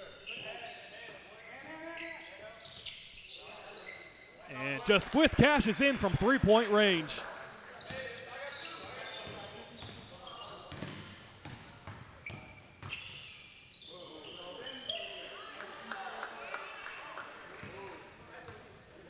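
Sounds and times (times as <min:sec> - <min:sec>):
players' voices: 0:04.5 - 0:07.3
sneaker squeaks: 0:08.6 - 0:15.1.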